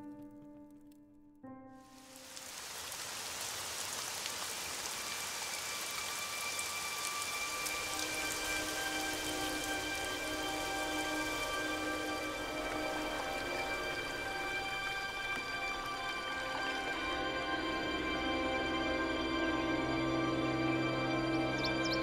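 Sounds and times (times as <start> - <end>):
steady rain falling: 1.8 - 21.6
low sustained musical notes: 4.6 - 22.0.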